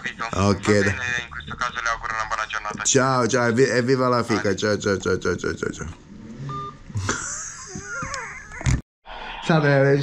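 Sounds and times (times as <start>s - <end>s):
man laughing: 7.0s - 8.8s.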